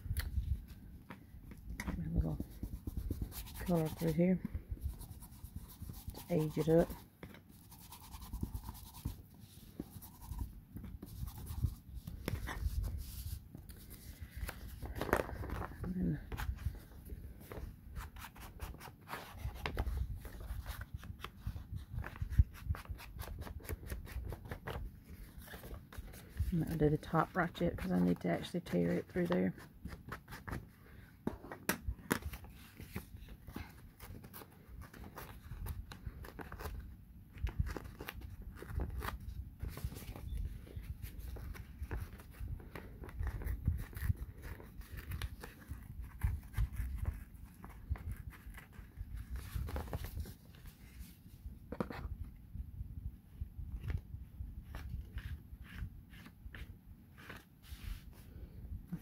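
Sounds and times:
paper rustling: 1.9 - 28.1, 29.0 - 52.1.

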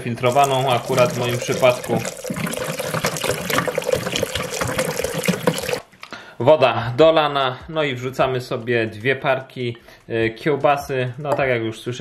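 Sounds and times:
water pouring into liquid: 0.0 - 5.9.

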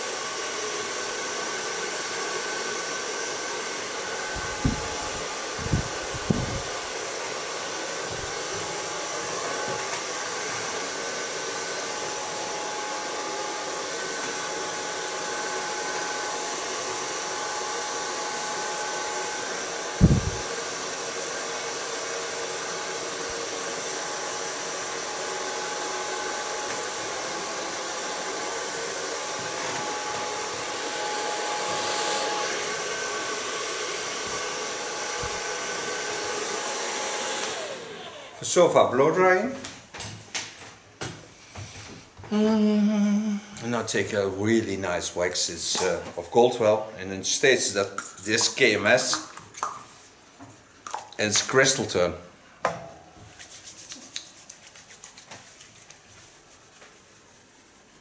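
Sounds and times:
hair dryer blowing: 0.0 - 39.6, 42.3 - 49.3.

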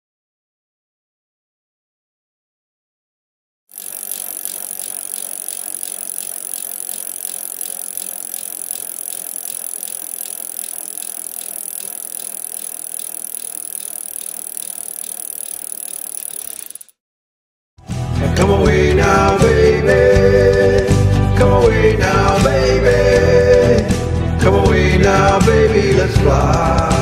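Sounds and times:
fast mechanical ticking: 3.7 - 17.0.

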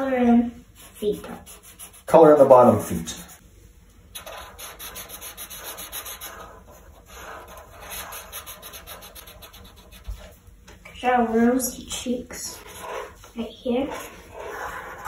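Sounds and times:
markers scribbling on paper: 0.8 - 2.4, 4.1 - 10.3, 12.5 - 13.2, 13.8 - 15.0.

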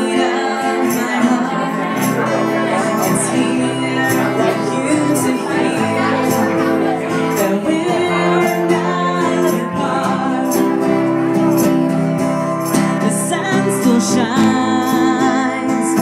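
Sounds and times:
woman singing: 0.0 - 11.3, 12.7 - 16.0
strummed acoustic guitar: 0.0 - 16.0.

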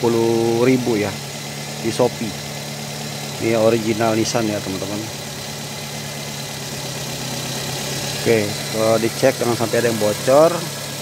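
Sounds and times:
car engine idling: 0.0 - 11.0.

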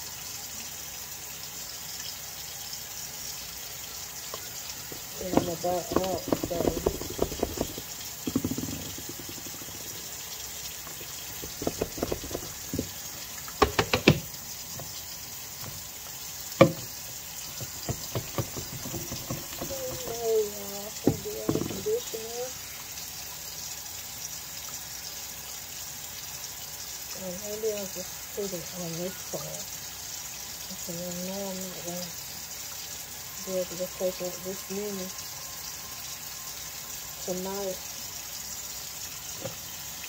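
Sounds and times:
conditioner squished through hair: 4.9 - 10.1, 10.8 - 14.9, 17.5 - 20.5.

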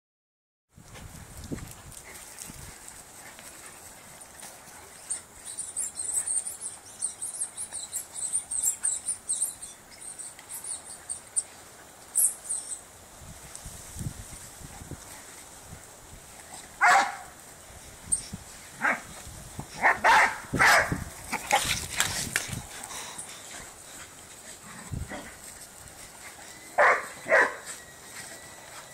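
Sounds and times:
dogs scuffling and running: 0.8 - 12.4, 14.3 - 28.9.

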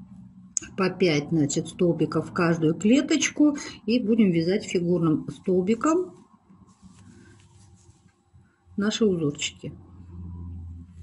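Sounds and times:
soft rustling of yarn: 0.0 - 11.0.

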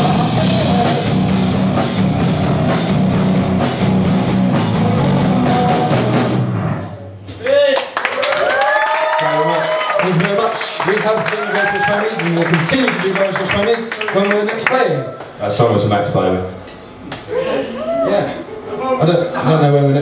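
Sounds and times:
live rock band playing: 0.0 - 7.4
crowd whooping and cheering: 7.5 - 15.4, 17.4 - 18.7.

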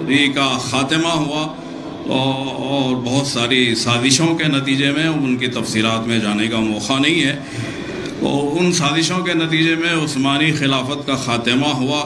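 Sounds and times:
man giving speech over microphone: 0.0 - 12.0.

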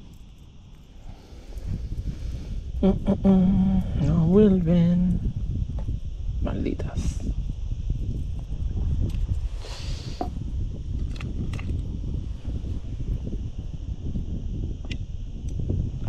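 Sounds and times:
wind rumble on microphone: 0.0 - 16.0.

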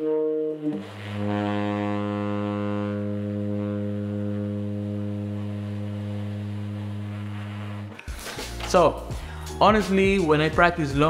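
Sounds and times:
tenor saxophone long low note: 0.0 - 8.0.

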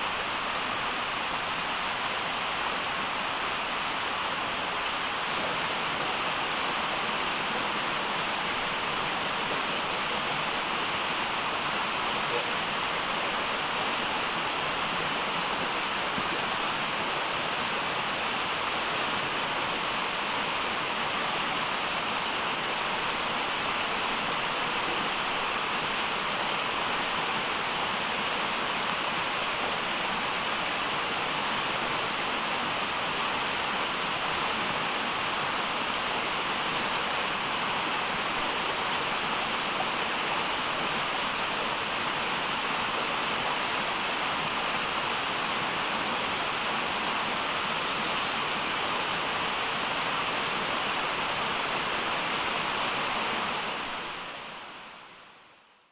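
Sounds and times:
steady rain in forest: 0.0 - 55.9.

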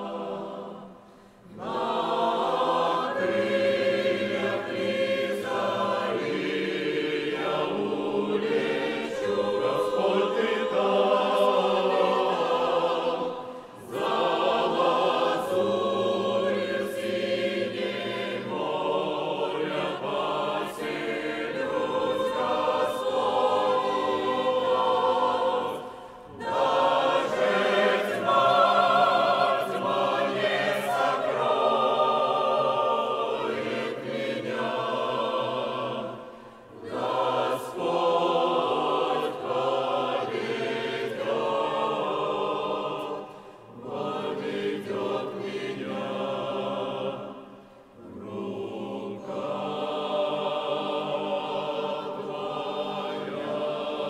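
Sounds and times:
choir singing: 0.0 - 54.0
short breaths: 1.0 - 1.5.

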